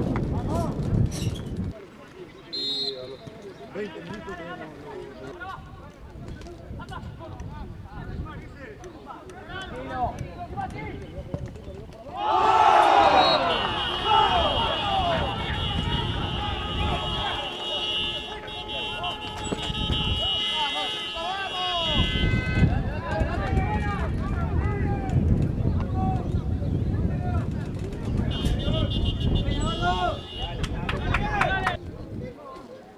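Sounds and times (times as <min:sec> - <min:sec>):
football commentator: 0:02.2 - 0:19.6
excited shouting: 0:12.1 - 0:19.3.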